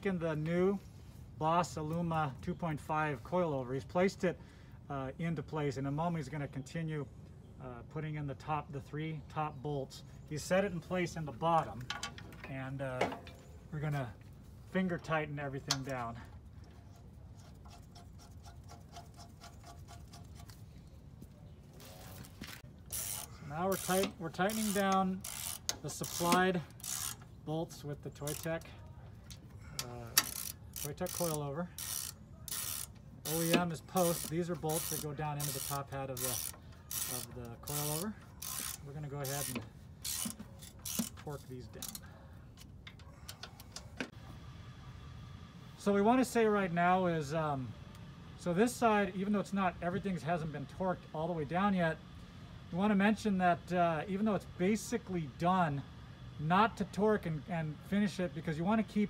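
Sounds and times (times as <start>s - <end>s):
ratchet wrench clicks: 22.9s - 27.3s, 28.2s - 28.7s, 29.3s - 42.0s.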